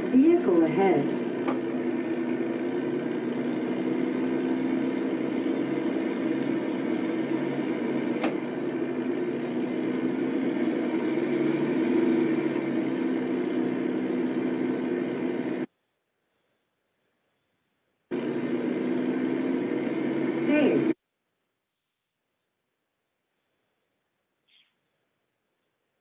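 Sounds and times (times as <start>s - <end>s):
car engine hum: 0.0s - 15.7s, 18.1s - 21.0s
click: 8.2s - 8.4s.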